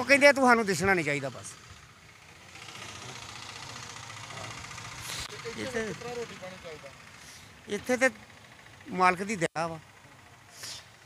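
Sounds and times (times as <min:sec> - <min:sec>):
engine idling: 0:00.0 - 0:11.0
street background noise: 0:00.0 - 0:11.0.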